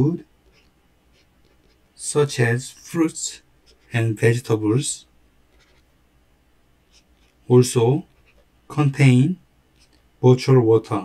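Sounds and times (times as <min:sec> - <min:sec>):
pen scratching on paper: 0:00.4 - 0:01.9, 0:03.6 - 0:04.0, 0:05.5 - 0:05.9, 0:06.9 - 0:07.4, 0:08.0 - 0:08.5.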